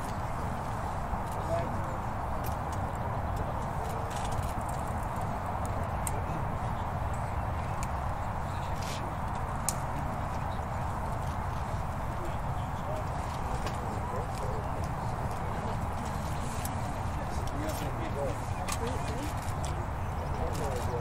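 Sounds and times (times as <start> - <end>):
distant voices: 0.0 - 21.0.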